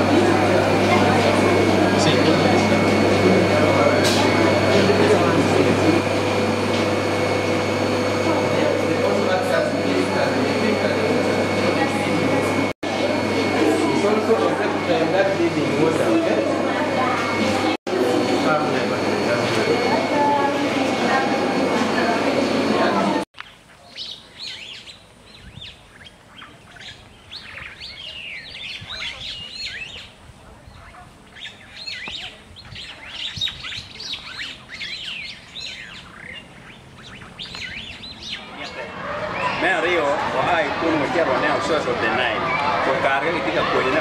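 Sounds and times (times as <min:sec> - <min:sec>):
indoor hubbub with voices: 0:00.0 - 0:44.0
birds chirping: 0:23.4 - 0:44.0.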